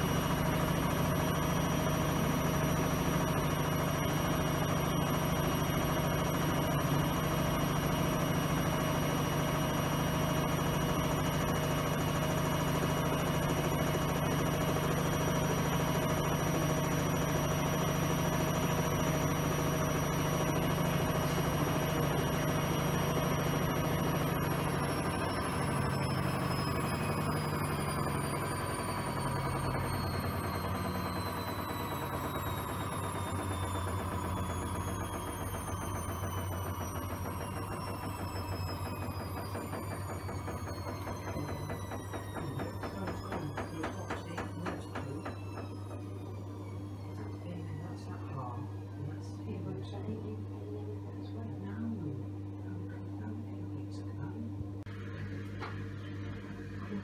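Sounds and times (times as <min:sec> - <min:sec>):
washing machine running: 0:00.0 - 0:57.0.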